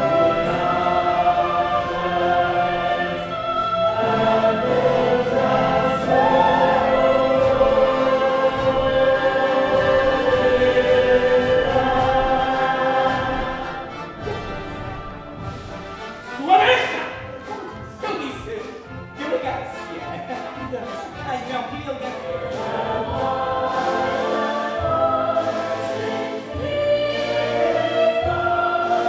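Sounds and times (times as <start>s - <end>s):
cast singing in chorus: 0.0s - 15.8s, 22.2s - 29.0s.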